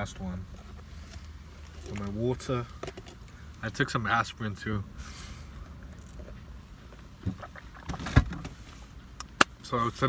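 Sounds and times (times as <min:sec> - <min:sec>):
car cabin rumble: 0:05.6 - 0:10.0.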